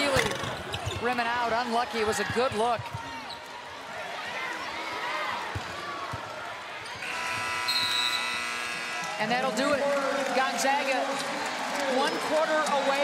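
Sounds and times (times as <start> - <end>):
crowd noise: 0.0 - 13.0
buzzing horn: 7.0 - 9.2.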